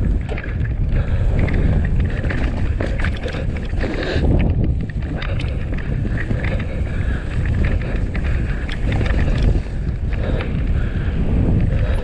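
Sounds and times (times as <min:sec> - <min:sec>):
tyres on dirt: 0:00.0 - 0:10.8
bike clicks and rattles: 0:00.0 - 0:12.0
wind buffeting microphone: 0:00.0 - 0:12.0.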